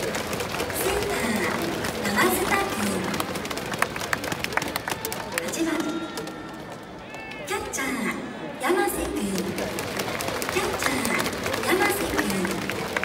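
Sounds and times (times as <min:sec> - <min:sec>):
scattered clapping: 0:00.0 - 0:08.1, 0:08.7 - 0:13.0
stadium crowd noise: 0:00.0 - 0:13.0
announcer voice echoing: 0:00.8 - 0:03.4, 0:05.2 - 0:09.7, 0:10.6 - 0:12.6.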